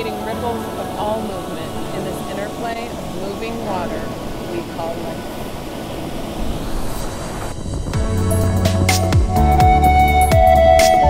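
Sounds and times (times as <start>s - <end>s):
whitewater rushing: 0.0s - 11.0s.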